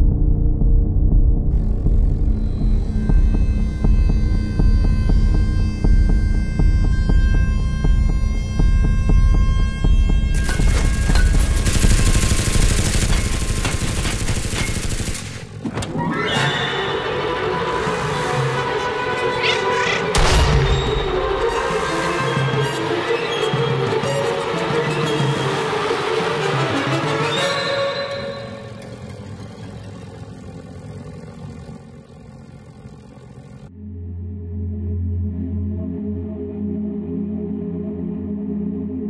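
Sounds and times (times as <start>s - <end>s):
low rumble: 0.0s - 5.6s
orchestral music: 15.9s - 29.4s
propeller plane engines droning: 21.2s - 33.7s.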